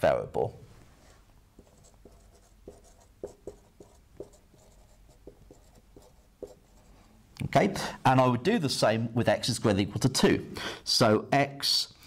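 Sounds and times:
marker pen on whiteboard: 1.0s - 7.1s.

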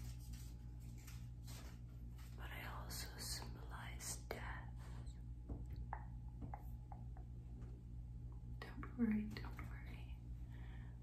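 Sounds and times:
woman whispering: 2.4s - 5.2s, 8.5s - 10.4s.

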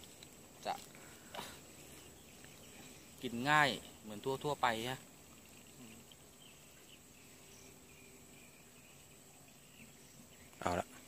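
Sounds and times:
soft rain hiss: 0.0s - 11.0s.

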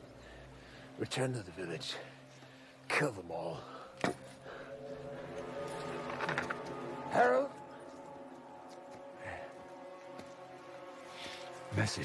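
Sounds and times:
film score with sustained tones: 0.0s - 12.0s.

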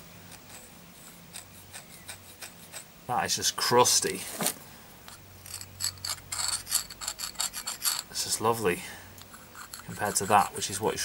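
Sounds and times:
metal scraping carbon crust: 0.3s - 11.0s.

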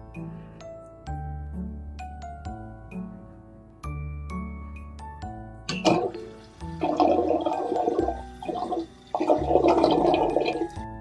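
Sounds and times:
soft background music: 0.0s - 11.0s
water gurgling down drain: 5.7s - 10.9s.

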